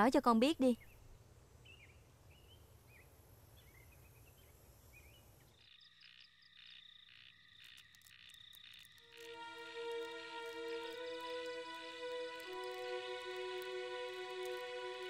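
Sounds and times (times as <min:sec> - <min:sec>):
frogs calling: 0:05.5 - 0:14.6
soft music with held notes: 0:09.0 - 0:15.0.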